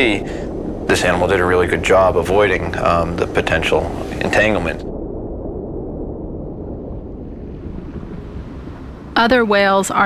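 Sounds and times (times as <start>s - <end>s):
ocean water rumble: 0.0s - 10.0s
wind noise: 0.0s - 10.0s.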